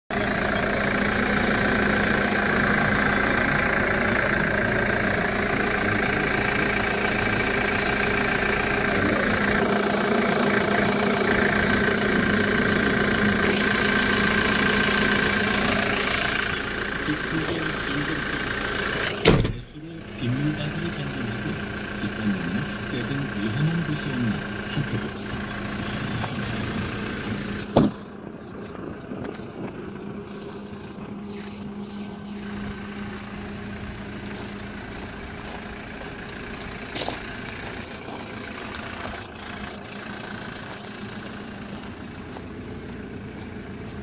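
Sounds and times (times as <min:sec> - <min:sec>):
diesel engine idling: 0:00.1 - 0:44.0.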